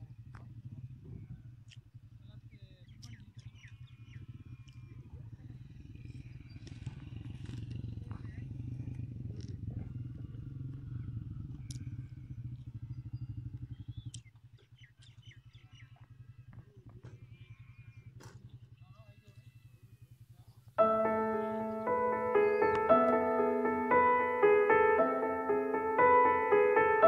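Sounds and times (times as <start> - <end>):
small engine running: 3.0 - 15.4.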